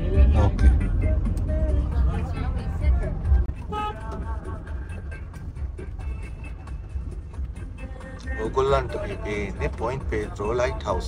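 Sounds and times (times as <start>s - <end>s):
indistinct voices: 0.0s - 5.2s
low road rumble inside car: 0.0s - 11.0s
music: 0.0s - 11.0s.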